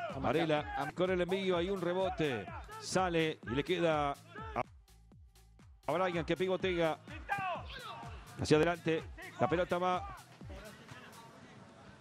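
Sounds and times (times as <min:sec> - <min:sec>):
sports commentator talking: 0:00.0 - 0:04.6, 0:05.9 - 0:12.0.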